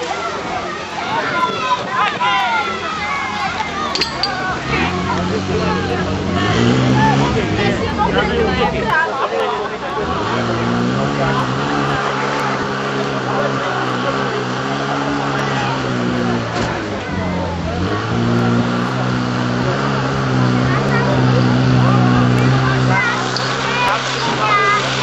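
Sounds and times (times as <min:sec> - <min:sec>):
fire pump engine running: 0:03.0 - 0:25.0.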